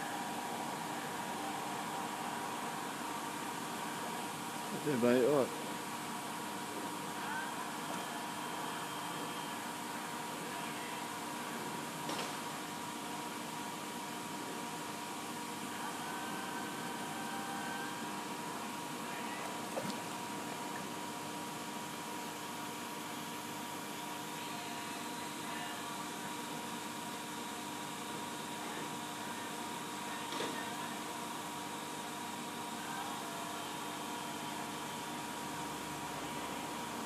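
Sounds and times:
mechanical hum with high whine: 0.0 - 37.0.

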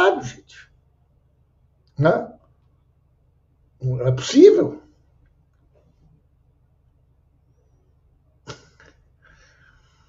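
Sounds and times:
man speaking: 0.0 - 0.7, 2.0 - 2.4, 3.8 - 5.0.

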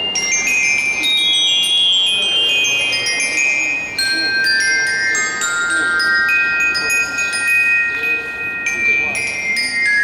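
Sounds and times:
high bell-like ringing tones: 0.0 - 10.0.

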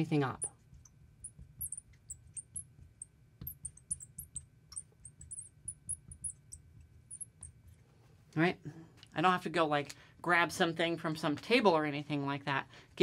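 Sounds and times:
marker squeaking on glass: 1.2 - 7.6.

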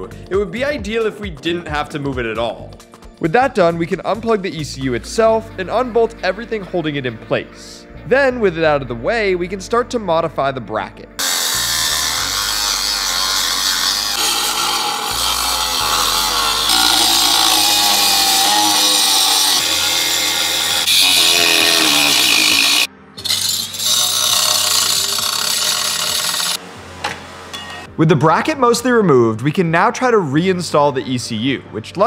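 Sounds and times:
angle grinder cutting metal: 11.2 - 26.6.

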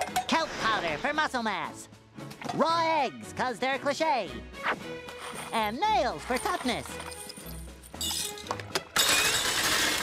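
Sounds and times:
background music: 0.0 - 10.0
metal nails clattering: 5.1 - 10.0.

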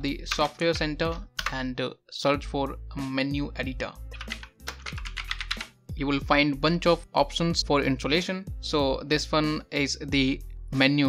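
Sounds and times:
background music: 0.0 - 11.0
computer keyboard typing: 1.1 - 1.6, 4.1 - 5.7.

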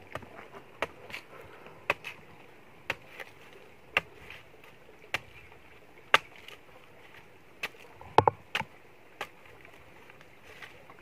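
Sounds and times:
machete chopping coconut husk: 1.9 - 2.2, 2.9 - 3.3, 5.1 - 5.4, 6.1 - 6.6.

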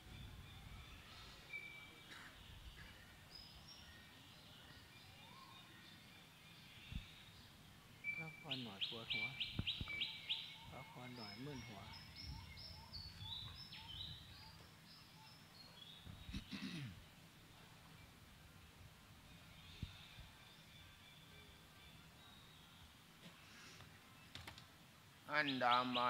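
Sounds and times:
birdsong: 0.0 - 26.0
rapid repeated bird notes: 6.0 - 17.4.

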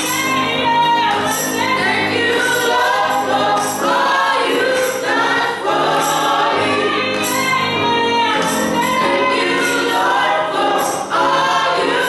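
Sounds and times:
group singing in harmony: 0.0 - 12.0.

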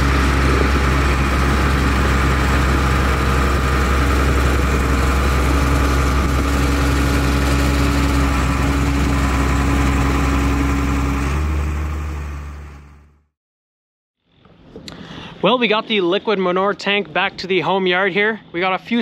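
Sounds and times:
tractor engine running: 0.0 - 13.3.

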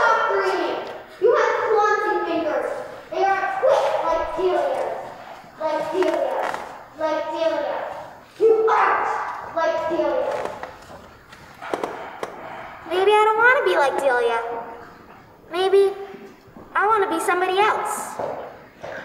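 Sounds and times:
child speaking: 0.0 - 10.7, 12.8 - 14.9, 15.5 - 18.3.

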